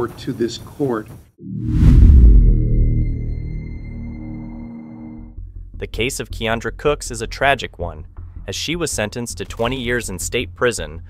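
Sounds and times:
deep boom: 1.4s - 4.1s.

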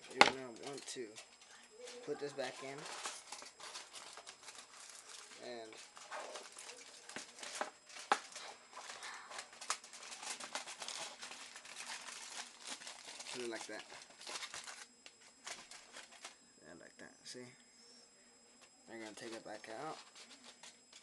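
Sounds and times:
foil and plastic bottle crinkling: 0.0s - 16.4s, 19.0s - 21.0s.

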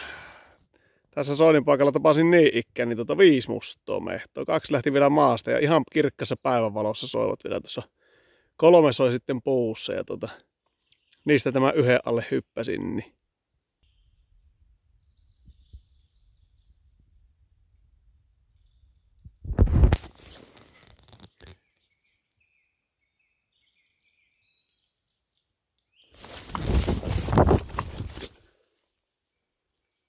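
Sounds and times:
loud rustling bursts: 26.2s - 28.4s.

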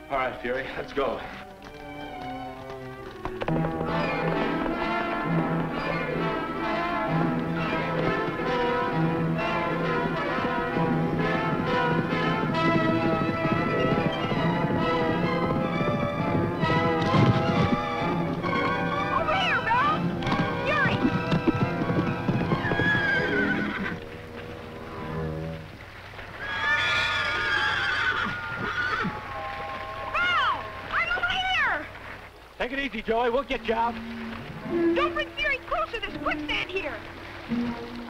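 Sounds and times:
dramatic orchestral music: 0.0s - 22.7s, 33.6s - 38.0s
galloping horse hoofbeats: 0.0s - 38.0s
horse whinnying: 7.6s - 25.6s, 26.3s - 29.3s.

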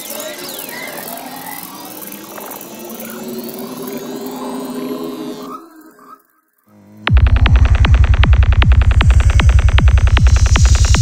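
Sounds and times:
ambient electronic drones: 0.0s - 11.0s
gliding whale-like sweeps: 1.1s - 7.1s.

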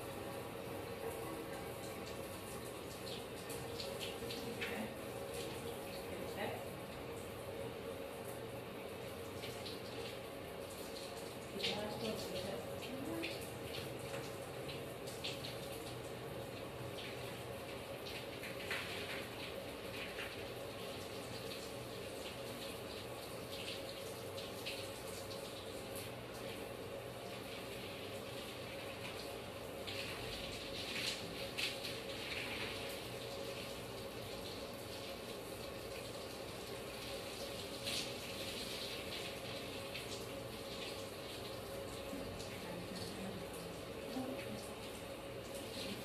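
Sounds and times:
water running into bathtub: 0.0s - 46.0s.

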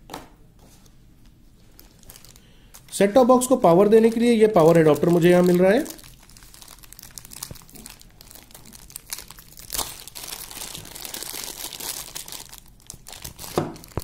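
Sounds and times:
plastic bag crinkling: 1.6s - 14.0s.

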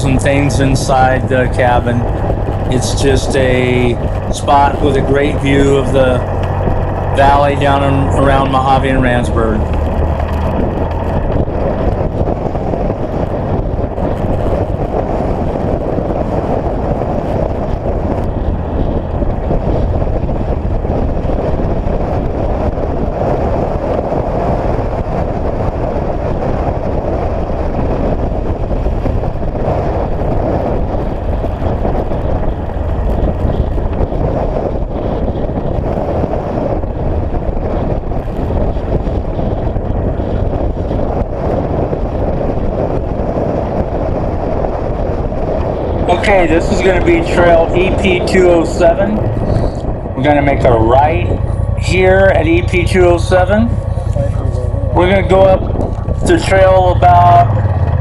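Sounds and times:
utility vehicle driving on dirt road: 0.0s - 58.0s.

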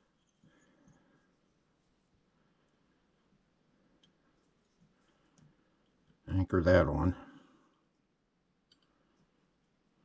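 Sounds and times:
person speaking: 6.3s - 7.4s
faint click: 8.7s - 9.0s.

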